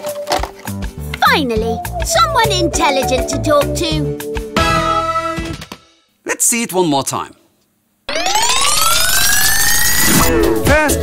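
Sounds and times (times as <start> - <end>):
rising siren-like cartoon tone: 8.1 - 10.7.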